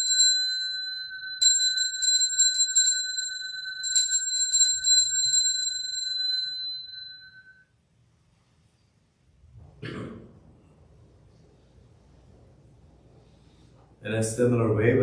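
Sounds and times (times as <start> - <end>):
altar bells ringing: 0.0 - 7.7.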